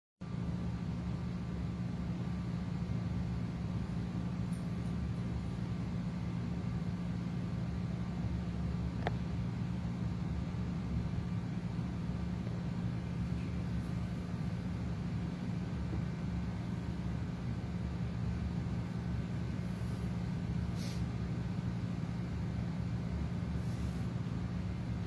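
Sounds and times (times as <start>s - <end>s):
steady low hum: 0.2s - 25.0s.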